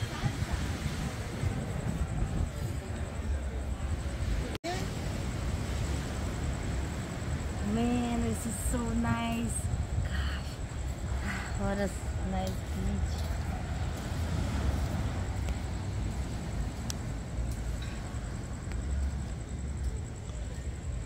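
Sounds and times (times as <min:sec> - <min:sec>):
wind buffeting microphone: 0:00.0 - 0:20.2.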